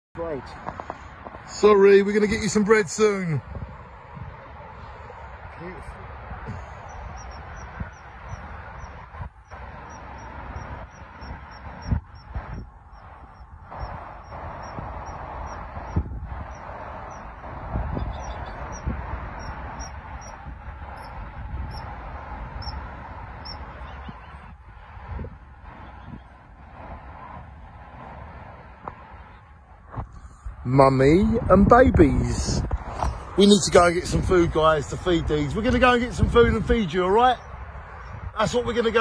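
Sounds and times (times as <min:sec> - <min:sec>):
outdoor background noise: 0:00.2 - 0:39.0
bird chirping: 0:06.6 - 0:12.3, 0:13.0 - 0:20.4, 0:23.4 - 0:24.5.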